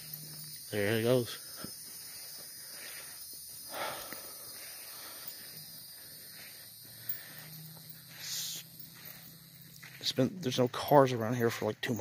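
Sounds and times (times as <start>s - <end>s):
steady high hiss: 0.0s - 12.0s.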